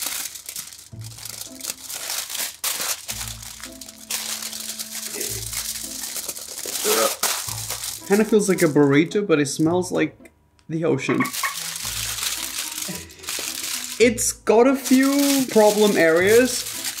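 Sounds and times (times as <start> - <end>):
foil wrap crackling: 0.0 - 9.2, 11.2 - 17.0
background music: 0.0 - 17.0.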